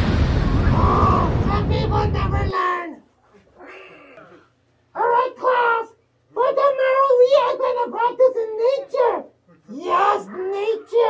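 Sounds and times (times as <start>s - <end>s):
cartoon explosion rumble: 0.0s - 2.5s.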